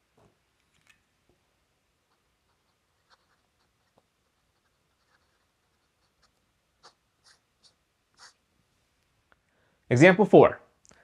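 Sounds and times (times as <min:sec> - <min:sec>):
fountain pen scratching on paper: 0:02.1 - 0:08.4.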